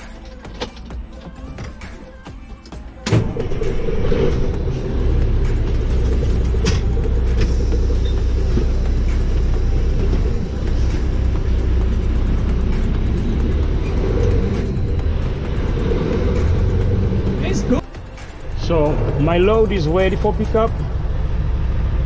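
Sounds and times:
truck diesel engine rumble: 0.0s - 22.0s.

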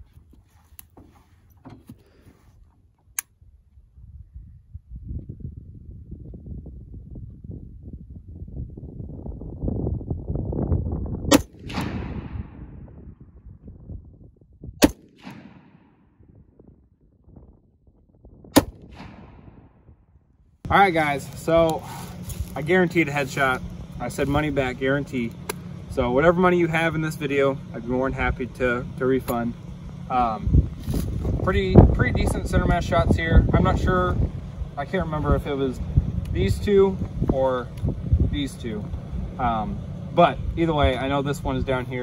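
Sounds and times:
rifle shots with echo: 11.3s - 12.9s, 14.8s - 16.2s, 18.6s - 19.9s.

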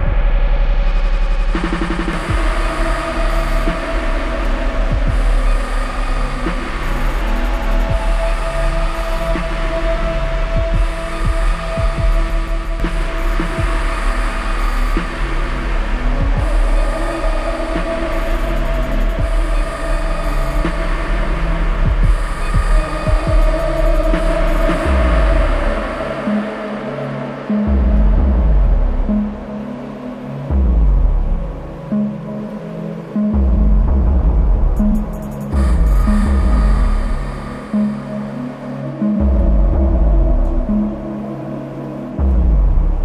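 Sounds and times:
heavy sub-bass: 0.0s - 18.0s, 18.8s - 25.9s, 27.7s - 29.4s, 30.5s - 31.8s, 33.3s - 37.5s, 39.2s - 41.0s, 42.2s - 43.0s.

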